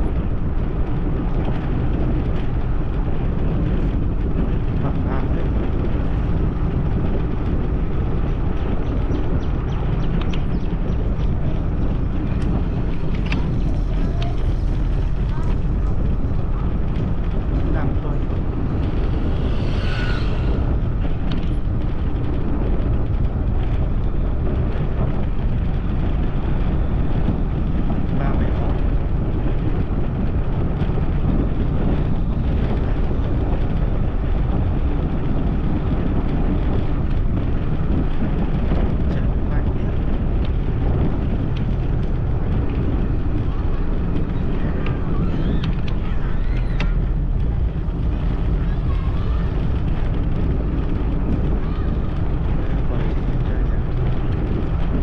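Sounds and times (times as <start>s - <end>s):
vehicle road and engine noise: 0.0s - 55.0s
wind rumble on microphone: 0.0s - 55.0s.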